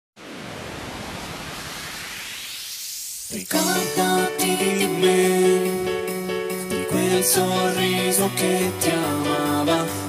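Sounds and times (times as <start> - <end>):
synthesized white-noise sweep: 0.2 - 10.0.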